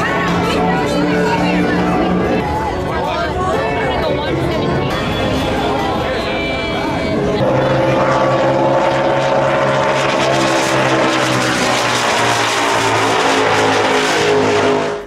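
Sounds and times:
powerboat engines at speed: 0.0 - 15.0.

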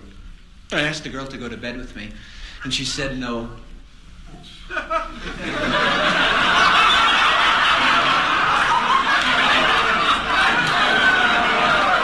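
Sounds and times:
audience laughing: 4.6 - 12.0.

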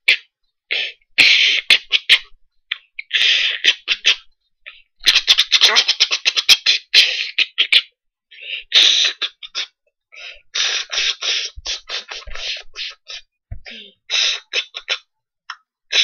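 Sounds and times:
boy beatboxing: 5.0 - 7.9, 8.7 - 9.8, 10.5 - 16.0.

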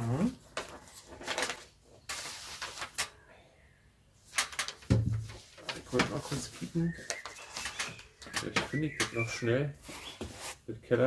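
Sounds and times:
paper handling: 0.5 - 3.2, 4.3 - 10.6.

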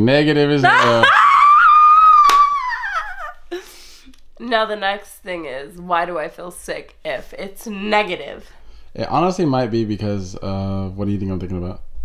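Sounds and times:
woman squealing laugh: 0.6 - 3.8.

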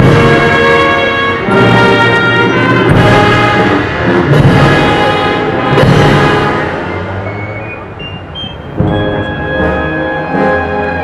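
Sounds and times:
brass band funeral march: 0.0 - 8.0, 8.7 - 11.0
drum stroke: 4.2 - 5.0, 5.7 - 6.9, 8.6 - 9.7.

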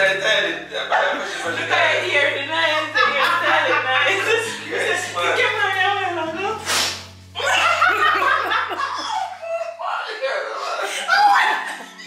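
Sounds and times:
people laughing hard: 0.0 - 6.0, 7.4 - 12.0.

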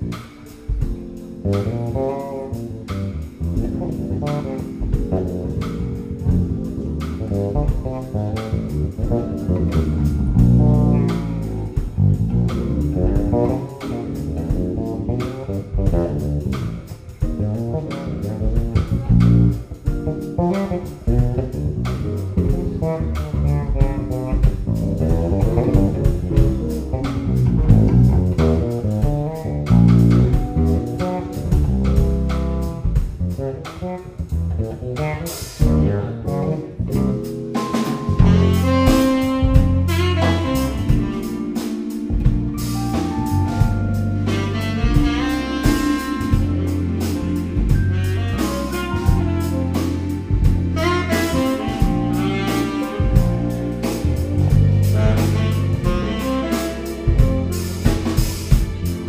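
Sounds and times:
electric bass guitar: 0.0 - 59.0
live jazz band playing: 0.0 - 59.0.

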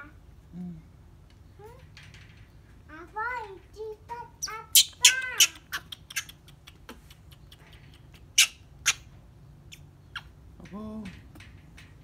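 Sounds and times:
baby monkey squealing: 4.4 - 6.4, 8.2 - 9.1.

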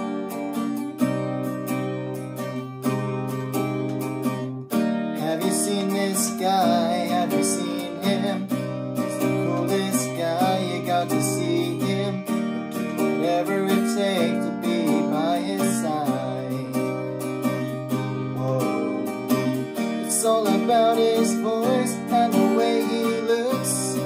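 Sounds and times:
acoustic guitar strumming: 0.0 - 24.0
backing track: 0.0 - 24.0
man singing: 5.2 - 24.0.

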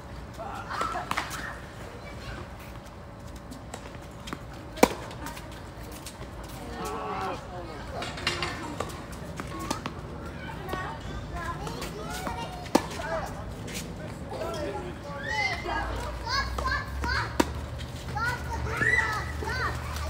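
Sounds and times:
children's voices: 9.5 - 13.2, 15.2 - 20.0.

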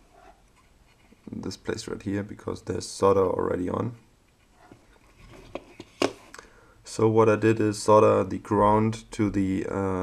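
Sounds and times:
faint handling noise: 3.8 - 6.4.

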